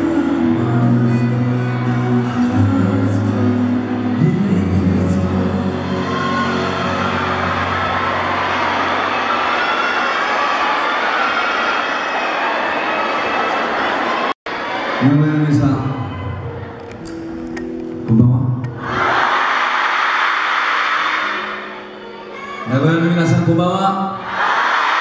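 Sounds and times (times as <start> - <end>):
audience cheering and screaming: 0.0 - 17.0, 18.8 - 23.4, 24.1 - 25.0.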